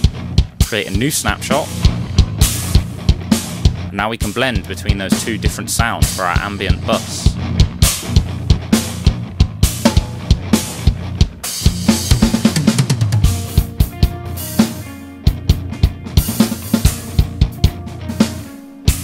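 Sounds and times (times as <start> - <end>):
drum kit groove: 0.0 - 19.0
held pitched notes: 0.0 - 19.0.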